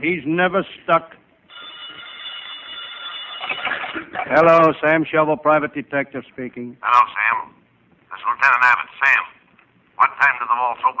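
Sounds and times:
telephone bell ringing: 1.5 - 4.4.

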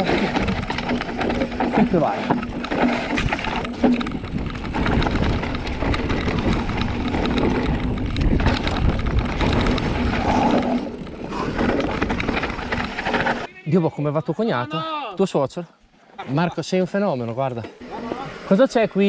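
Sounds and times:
tyres rolling over dirt and stones: 0.0 - 13.5
wind rumbling on microphone: 0.0 - 13.5
bike rattling: 0.0 - 13.6.

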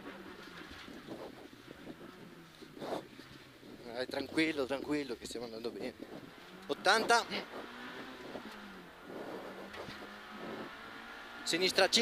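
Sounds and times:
car engine running: 0.0 - 12.0.

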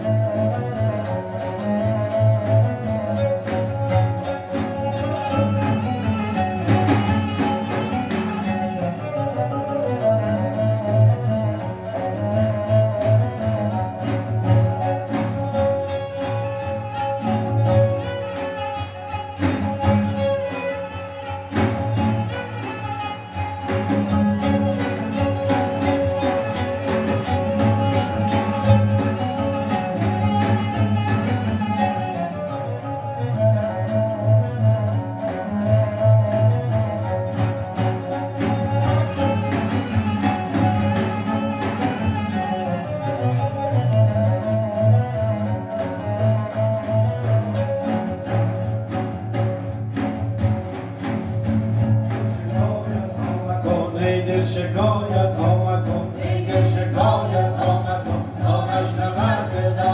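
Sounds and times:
bowed string tones: 0.0 - 59.9
plucked string notes: 0.0 - 59.9
person singing: 52.6 - 59.9.

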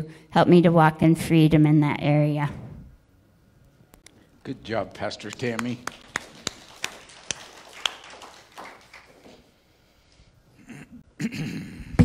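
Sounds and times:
footsteps on stage floor: 9.0 - 9.6.

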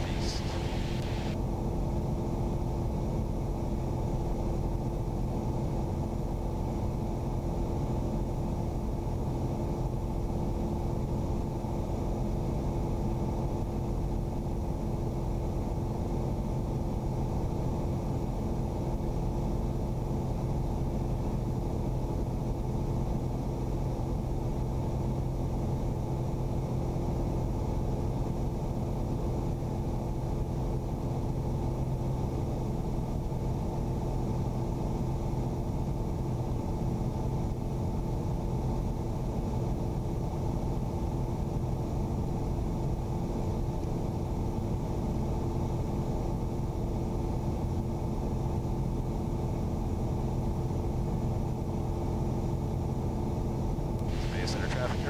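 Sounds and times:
aircraft engine droning in flight: 0.0 - 55.0.

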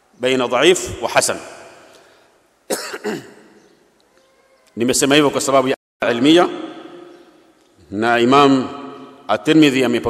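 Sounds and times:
man coughing: 2.7 - 3.5.

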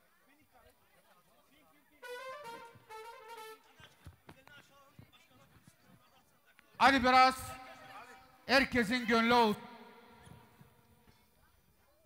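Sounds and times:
short high-pitched call: 2.0 - 3.7.

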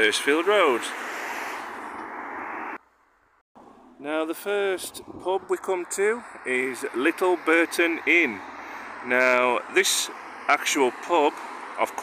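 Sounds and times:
outdoor background rush: 0.0 - 12.0.

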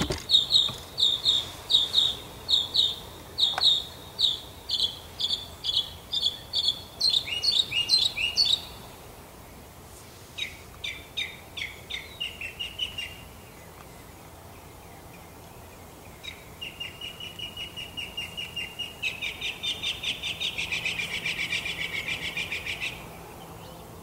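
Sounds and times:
songbird singing: 0.0 - 24.0.

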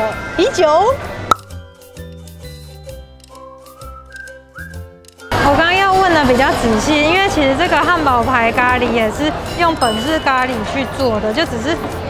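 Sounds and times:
light background music: 0.0 - 12.0
short pop sound effect: 1.3 - 1.6.

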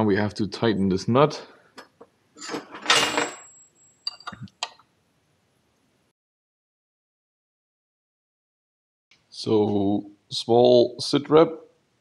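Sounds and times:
metal tools clattering: 2.4 - 4.4.

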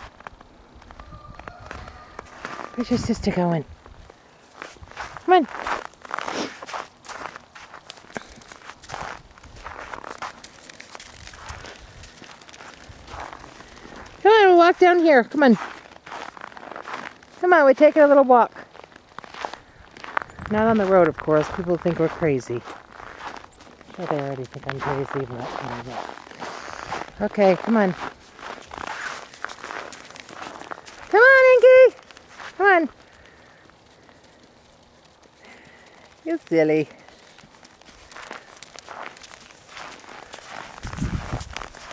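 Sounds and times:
footsteps on snow: 0.0 - 41.9.

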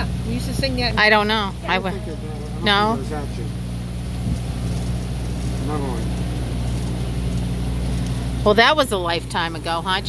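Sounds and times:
outboard motor running: 0.0 - 10.0
rushing water noise: 0.0 - 10.0.

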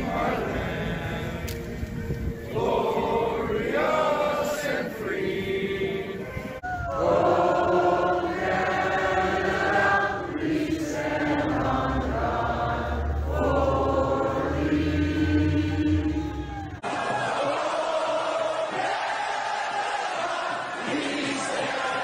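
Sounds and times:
crowd singing in unison: 0.0 - 22.0.

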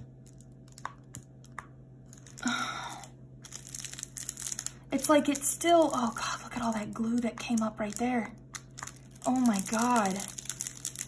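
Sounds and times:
plastic film peeling off: 8.6 - 11.0.

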